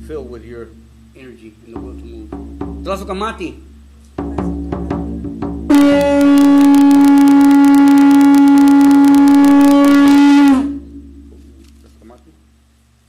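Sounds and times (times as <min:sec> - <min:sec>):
frame drum beating: 0:00.0 - 0:12.6
conch shell trumpet held note: 0:05.7 - 0:11.0.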